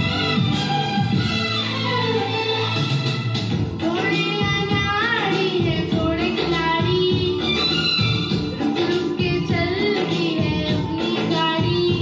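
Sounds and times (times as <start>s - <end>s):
recorded backing music: 0.0s - 12.0s
boy singing: 3.8s - 12.0s.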